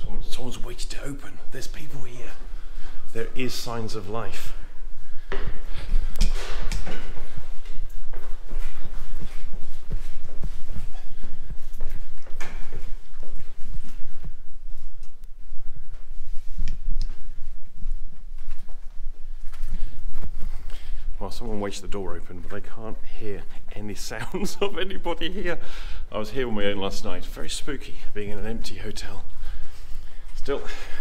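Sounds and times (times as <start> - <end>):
handheld camera rumble: 0.0 - 25.6
footsteps on stone stairs: 5.1 - 21.0.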